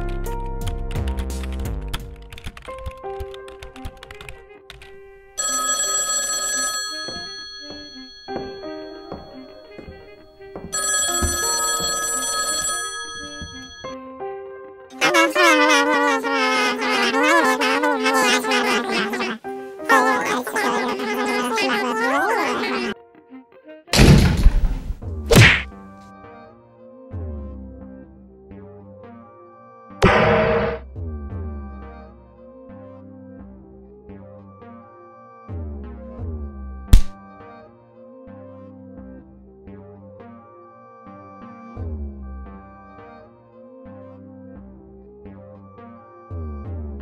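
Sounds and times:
telephone bell ringing: 0:05.4 - 0:14.0, 0:15.0 - 0:23.0.

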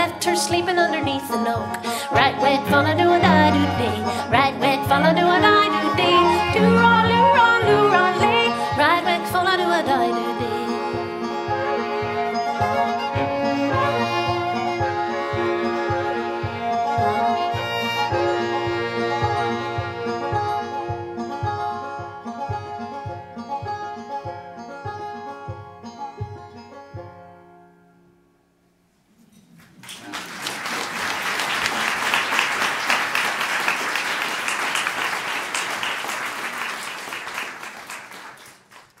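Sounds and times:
acoustic folk ensemble playing: 0:00.0 - 0:27.9
audience applauding: 0:29.6 - 0:39.0.

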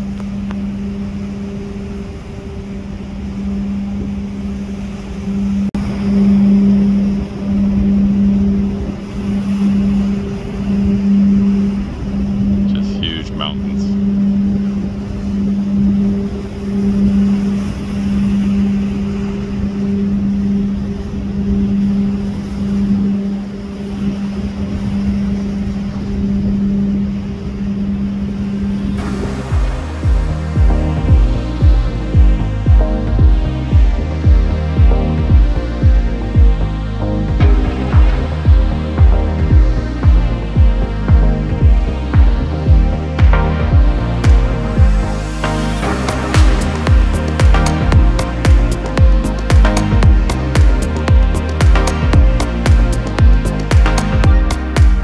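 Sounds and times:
ship machinery humming: 0:00.0 - 0:55.0
wind rumble on microphone: 0:00.0 - 0:55.0.

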